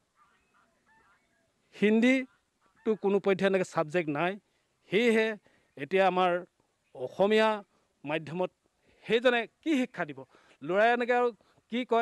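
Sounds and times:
man speaking: 1.7s - 12.0s.

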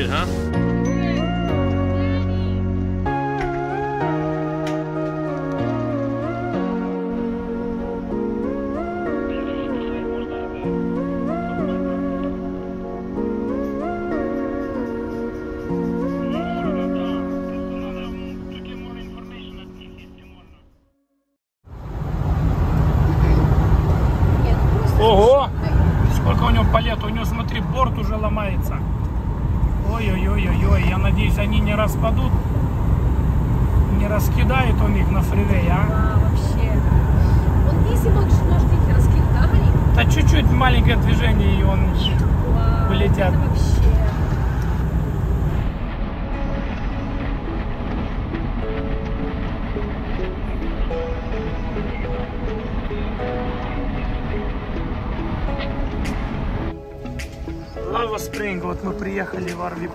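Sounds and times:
person speaking: 0.0s - 1.3s
vehicle road rumble: 0.0s - 20.7s, 21.6s - 59.9s.

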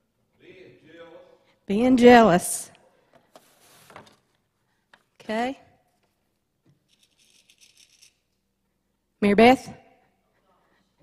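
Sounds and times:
small hard objects rattling: 6.9s - 8.2s.

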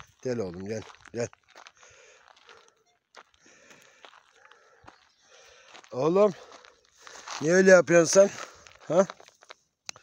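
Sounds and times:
footsteps on gravel: 0.0s - 10.0s.

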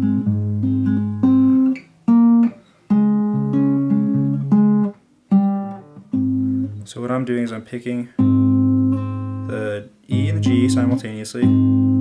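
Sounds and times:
acoustic guitar finger-picked: 0.0s - 12.0s.

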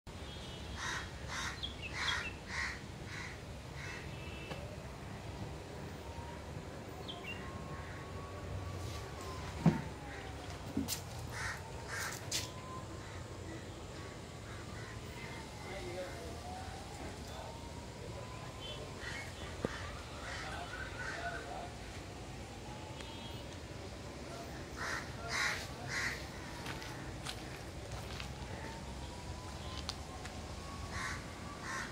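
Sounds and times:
crow cawing: 0.8s - 4.1s, 11.3s - 12.2s, 13.0s - 15.4s, 19.0s - 21.4s, 24.7s - 27.4s, 30.9s - 31.9s.

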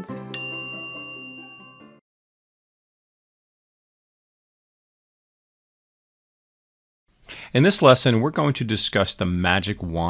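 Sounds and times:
bell-like notification chime: 0.3s - 2.0s.

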